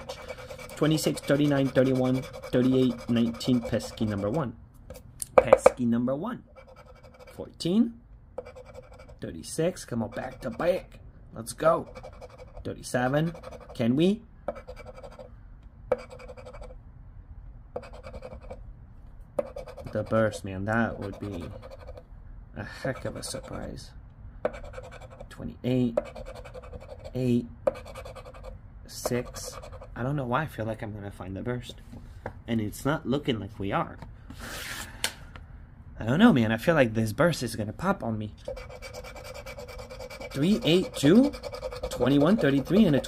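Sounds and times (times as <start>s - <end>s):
coin scratching lottery ticket: 0.0s - 4.4s, 6.6s - 7.4s, 8.4s - 9.2s, 11.8s - 13.8s, 14.5s - 15.3s, 15.9s - 16.7s, 17.8s - 18.6s, 19.4s - 22.0s, 24.5s - 25.2s, 26.0s - 28.5s, 38.5s - 43.0s.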